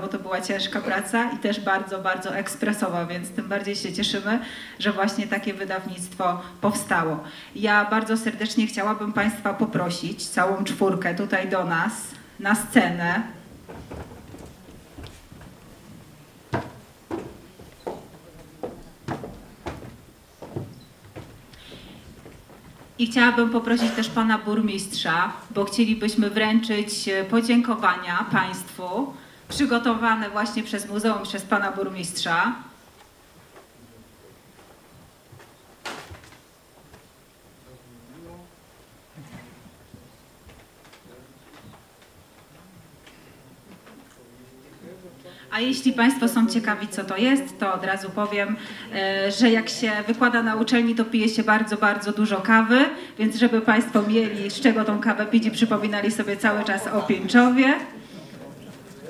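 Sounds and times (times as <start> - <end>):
hard-soled footsteps on stage: 9.1 - 10.0, 12.8 - 23.7, 29.4 - 30.4
low murmur of voices: 13.1 - 25.1, 53.4 - 59.0.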